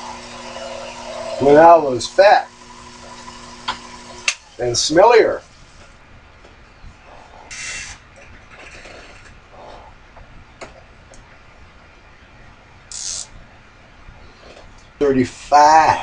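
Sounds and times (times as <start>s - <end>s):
lathe humming: 0.0s - 4.6s
short hissing: 12.9s - 13.4s.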